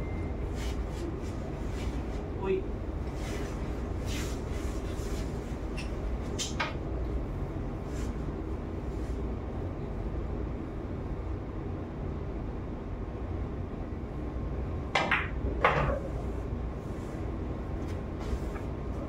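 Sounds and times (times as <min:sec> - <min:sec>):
low room hum: 0:00.0 - 0:19.0
cue tip hitting cue ball: 0:15.0 - 0:16.1
pool balls clacking: 0:15.0 - 0:16.2.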